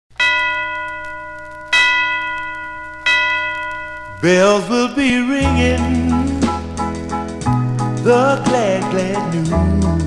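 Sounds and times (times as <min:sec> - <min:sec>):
bell chimes ringing: 0:00.2 - 0:05.0.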